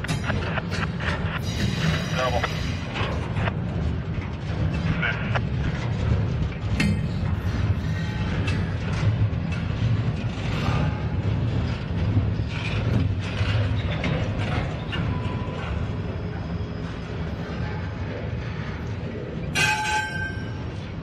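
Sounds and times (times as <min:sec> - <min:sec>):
freight cars clanking: 0:00.0 - 0:21.0
train wheels rumbling on rail: 0:00.0 - 0:21.0.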